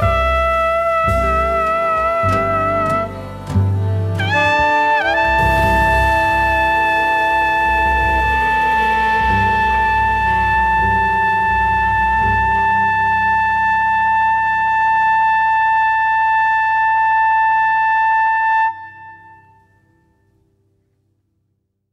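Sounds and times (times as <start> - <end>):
slow jazz ballad: 0.0 - 20.2.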